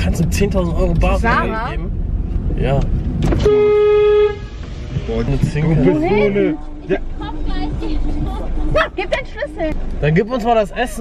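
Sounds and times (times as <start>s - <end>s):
car horn honk: 3.3s - 5.1s.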